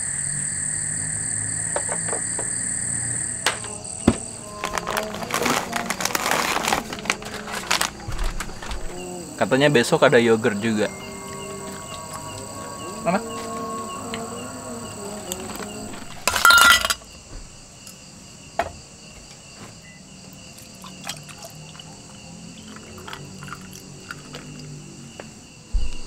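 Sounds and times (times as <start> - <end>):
high-pitched insect chirring: 0.0 - 17.1.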